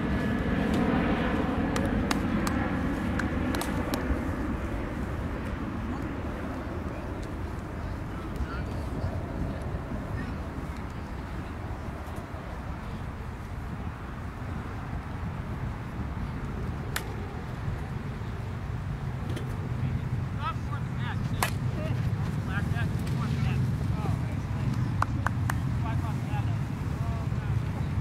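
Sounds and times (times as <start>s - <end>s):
plastic bat hitting ball: 3.2s - 4.0s, 21.4s - 21.6s.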